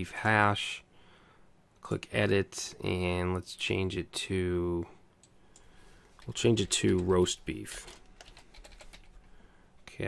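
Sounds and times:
faint typing on computer keyboard: 0:05.2 - 0:09.9.

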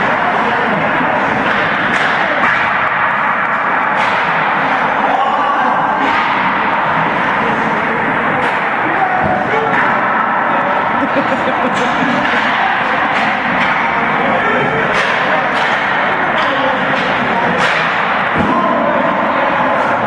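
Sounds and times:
hockey pucks hitting sticks: 0:00.0 - 0:20.0
murmur of voices: 0:00.0 - 0:20.0.

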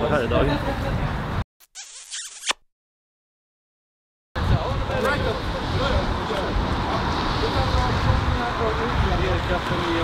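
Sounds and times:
high scratchy noise: 0:01.6 - 0:02.6.

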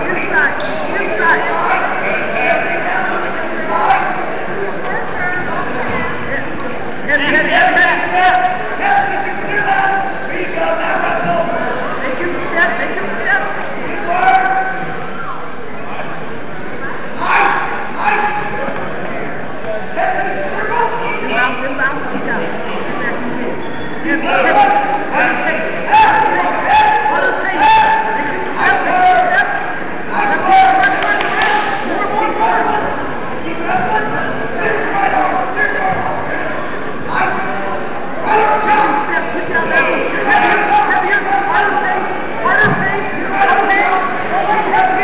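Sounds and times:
crowd noise in a gym: 0:00.0 - 0:45.0
spectators shouting: 0:24.2 - 0:36.3, 0:37.1 - 0:45.0.

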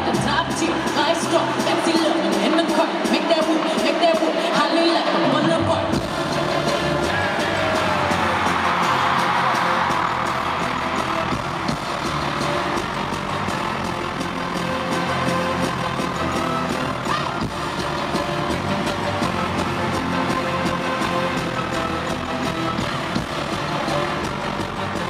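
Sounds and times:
crowd noise: 0:00.0 - 0:25.0
live pop concert music: 0:00.0 - 0:25.0.

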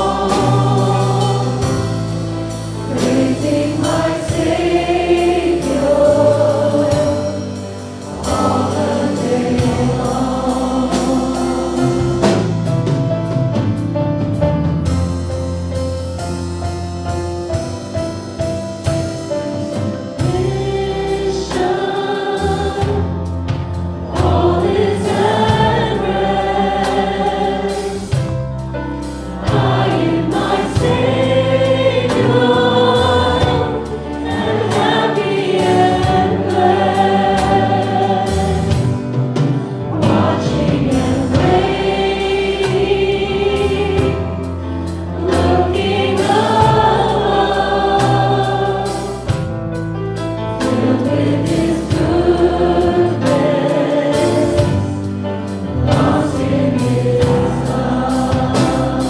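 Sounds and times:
congregation singing: 0:00.0 - 0:14.0, 0:18.8 - 0:59.0
live band playing: 0:00.0 - 0:59.0.

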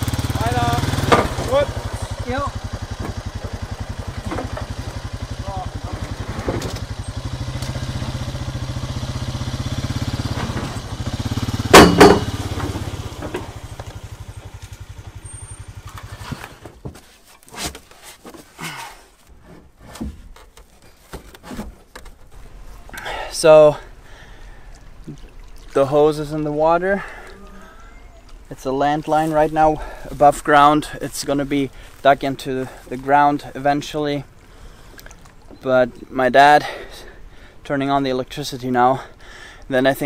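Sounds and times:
small engine idling: 0:00.0 - 0:16.8.

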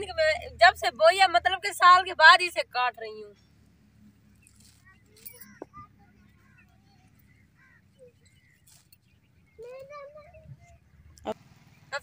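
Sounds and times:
faint distant calls: 0:03.2 - 0:12.0.

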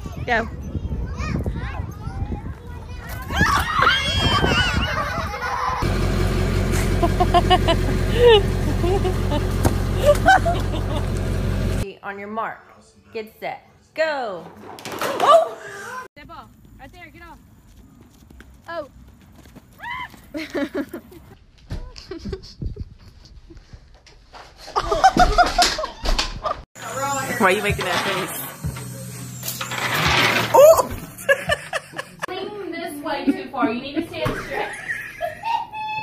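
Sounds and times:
children shouting and chattering: 0:00.0 - 0:05.8
horse hooves thudding: 0:16.3 - 0:22.0.

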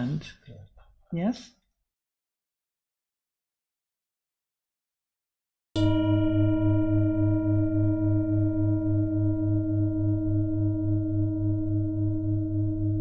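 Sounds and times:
singing bowl ringing: 0:05.8 - 0:13.0.

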